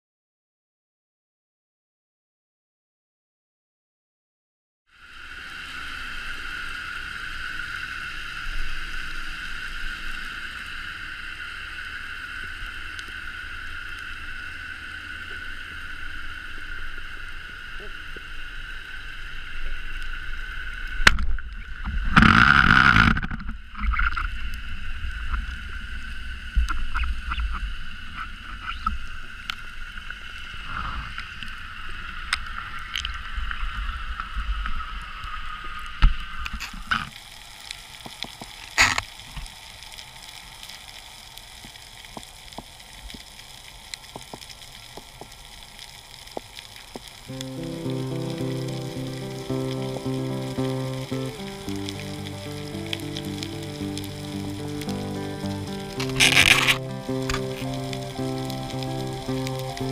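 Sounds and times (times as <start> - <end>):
underwater crackling hiss: 4.9 - 59.9
falling whine: 47.3 - 59.9
keyboard background music: 47.3 - 59.9.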